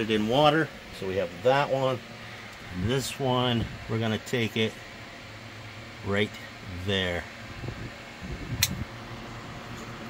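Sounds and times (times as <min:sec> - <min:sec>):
fan hum: 0:00.0 - 0:10.0.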